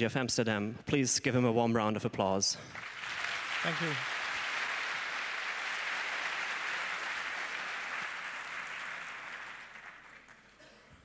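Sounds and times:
audience applauding: 2.7 - 10.6.

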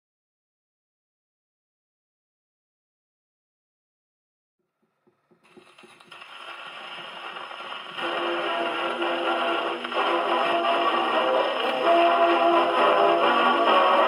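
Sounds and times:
record surface hiss: 5.1 - 14.0
dance orchestra on gramophone: 5.4 - 14.0.

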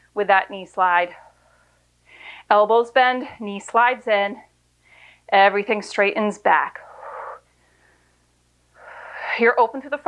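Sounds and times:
woman breathing hard: 1.2 - 2.5, 4.8 - 5.3, 6.8 - 9.4.

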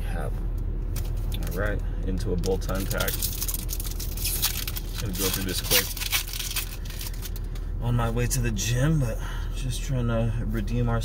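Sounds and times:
foil wrapper tearing and crinkling: 2.4 - 7.5.

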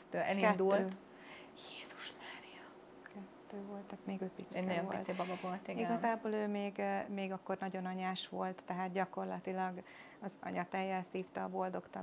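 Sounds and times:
woman whispering: 1.6 - 2.8.

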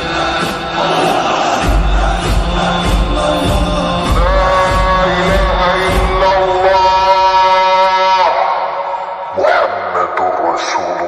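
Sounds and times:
person singing a long note: 2.5 - 8.6.

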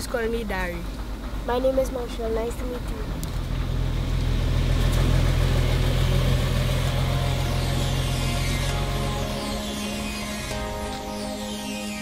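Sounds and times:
truck engine humming: 0.0 - 12.0.

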